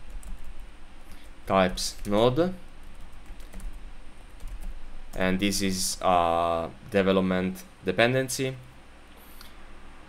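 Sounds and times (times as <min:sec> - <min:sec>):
typing on computer keyboard: 0:02.9 - 0:03.8.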